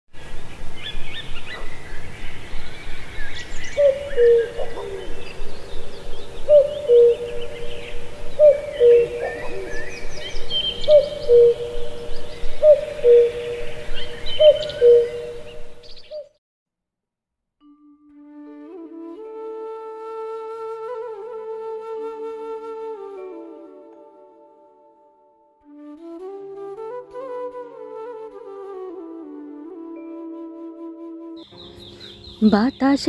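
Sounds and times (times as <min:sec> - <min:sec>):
small birds chirping: 0:00.2 - 0:16.3, 0:31.4 - 0:33.0
low two-note hooting call: 0:03.8 - 0:15.7.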